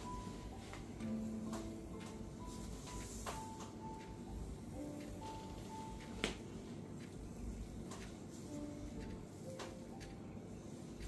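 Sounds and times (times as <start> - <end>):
soft music with held notes: 0.0 - 11.0.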